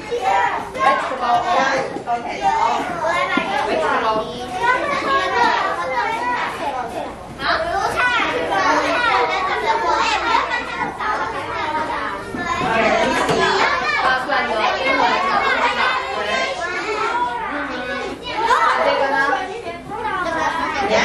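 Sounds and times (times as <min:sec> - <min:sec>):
young children talking: 0:00.0 - 0:21.0.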